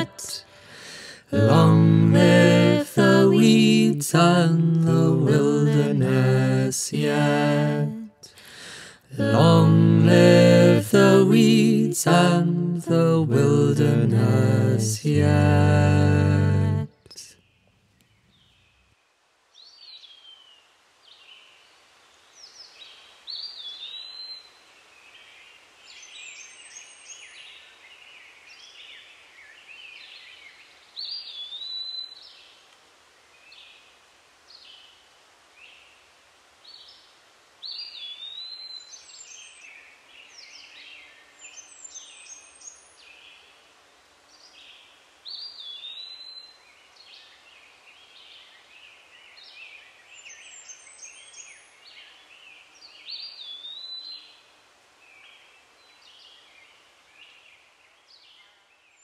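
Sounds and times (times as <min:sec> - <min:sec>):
faint outdoor hiss: 0:00.0 - 0:59.0.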